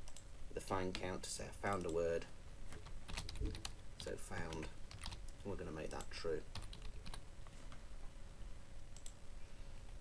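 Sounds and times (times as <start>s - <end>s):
computer mouse click: 9.0s - 9.2s.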